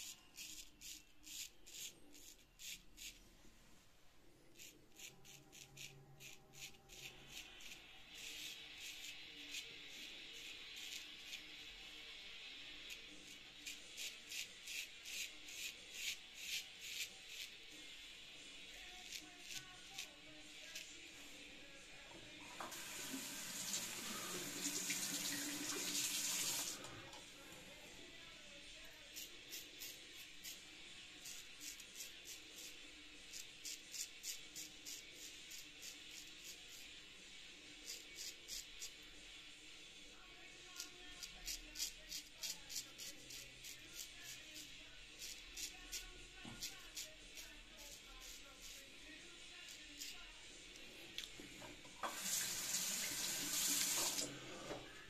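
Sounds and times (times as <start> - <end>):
razor scraping stubble: 0.0 - 3.2, 4.5 - 11.6, 12.7 - 17.9, 18.7 - 21.1, 28.8 - 37.0, 37.8 - 39.1, 40.7 - 51.3
water tap running: 22.5 - 27.0, 52.0 - 54.7.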